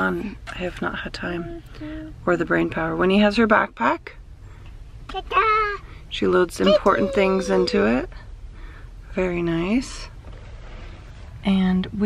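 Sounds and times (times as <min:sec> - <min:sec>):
child squealing: 0:06.6 - 0:08.0.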